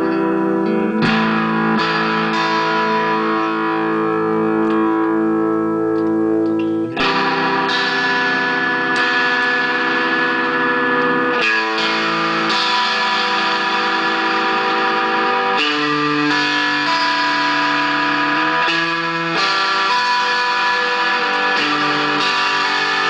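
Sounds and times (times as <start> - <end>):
distorted electric guitar notes: 0.0 - 23.0.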